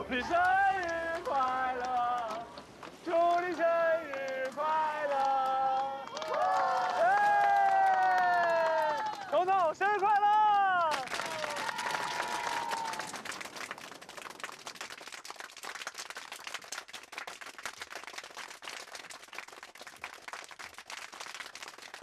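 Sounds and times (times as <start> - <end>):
people clapping: 0.0 - 22.0.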